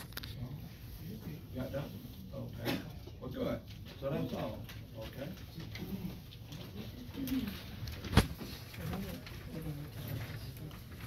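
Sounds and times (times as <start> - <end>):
murmuring voices: 4.3 - 11.0.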